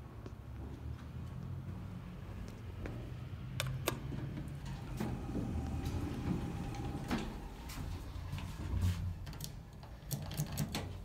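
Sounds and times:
sharp clicks and light knocks: 0:09.2 - 0:11.0.

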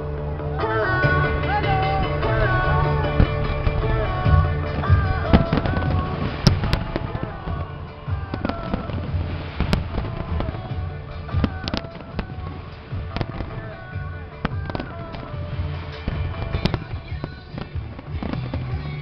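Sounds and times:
music playing: 0:00.0 - 0:19.0
fireworks bangs and crackles: 0:01.0 - 0:19.0.

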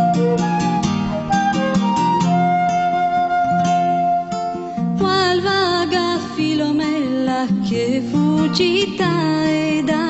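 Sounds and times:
flute melody: 0:00.0 - 0:04.8
picked acoustic guitar: 0:00.0 - 0:10.0.

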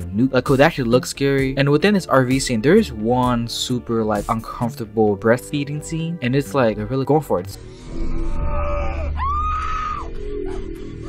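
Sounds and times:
low horror film score: 0:07.5 - 0:11.0
woman screaming: 0:08.3 - 0:10.6.

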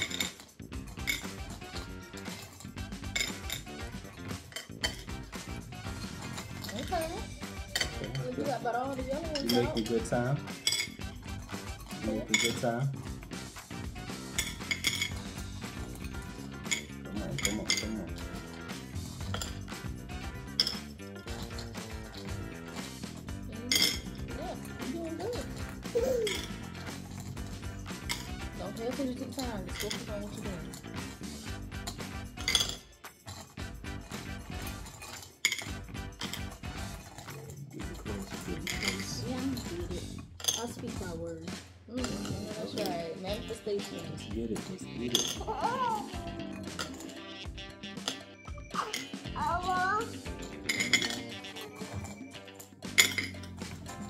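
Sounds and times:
candies clinking in glass bowl: 0:00.0 - 0:40.8, 0:42.0 - 0:54.0
background music: 0:00.0 - 0:54.0.

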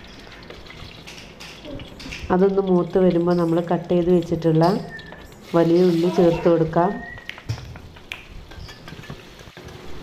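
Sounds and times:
onions sizzling in oil: 0:00.0 - 0:07.0.

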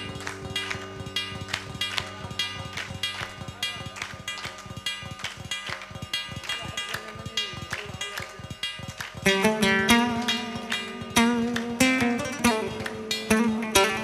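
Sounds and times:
oud plucked notes: 0:00.0 - 0:14.0.

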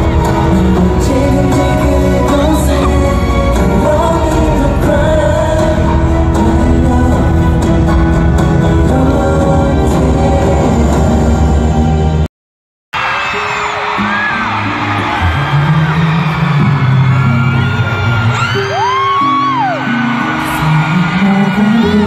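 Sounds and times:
live pop concert music: 0:00.0 - 0:12.3, 0:13.0 - 0:22.0
fans screaming and whooping: 0:13.0 - 0:22.0.

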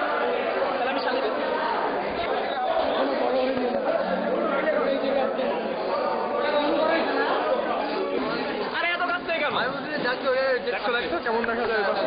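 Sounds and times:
hubbub of overlapping voices: 0:00.0 - 0:12.0.

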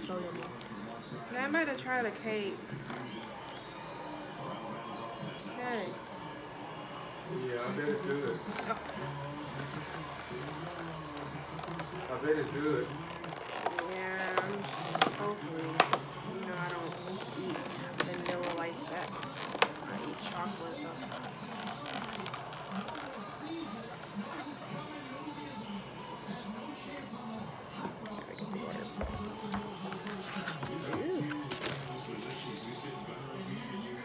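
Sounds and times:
plastic wrap crinkling: 0:29.3 - 0:33.0.

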